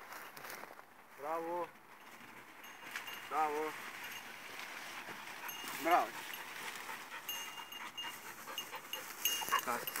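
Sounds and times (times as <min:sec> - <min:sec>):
dog panting: 0:04.0 - 0:10.0.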